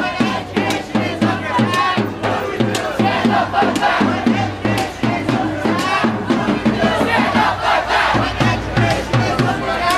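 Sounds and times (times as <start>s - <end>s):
crowd chanting: 0.0s - 9.9s
sharp rhythmic hits: 0.0s - 9.9s.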